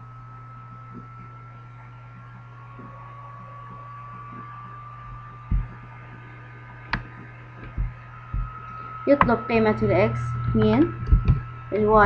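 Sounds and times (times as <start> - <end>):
faint high whine: 0.0 - 12.0
low electrical hum: 0.0 - 12.0.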